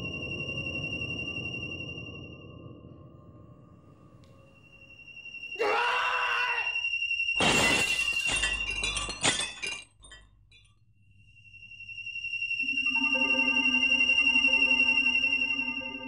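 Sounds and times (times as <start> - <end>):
man shouting in pain: 5.6 - 6.8
glass shards clinking: 7.4 - 10.7
mirror glass smashing: 7.4 - 10.7.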